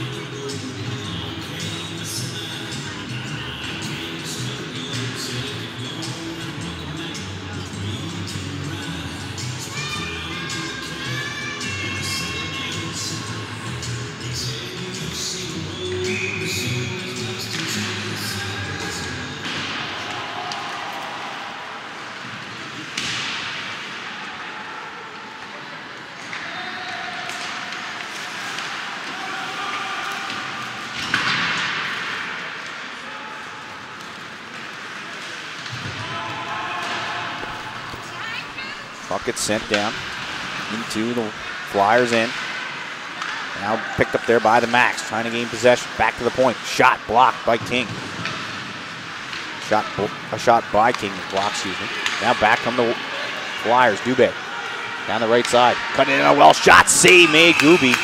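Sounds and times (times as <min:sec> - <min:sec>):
arena music over loudspeakers: 0:00.0 - 0:19.4, 0:55.1 - 0:58.0
crowd voices: 0:00.0 - 0:58.0
players shouting: 0:08.1 - 0:13.9, 0:14.8 - 0:22.1, 0:23.1 - 0:31.0, 0:35.3 - 0:48.0, 0:49.1 - 0:58.0.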